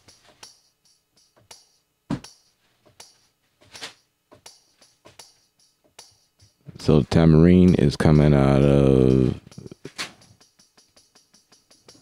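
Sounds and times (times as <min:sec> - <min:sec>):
tambourine hits: 0:00.0 - 0:03.2, 0:04.5 - 0:12.0.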